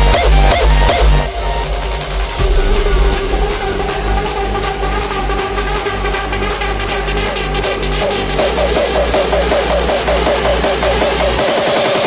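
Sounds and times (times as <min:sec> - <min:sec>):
fast ticking percussion: 0:00.0 - 0:12.0
heavy pounding kick drum: 0:00.0 - 0:12.0
sustained synth chords: 0:00.0 - 0:12.0.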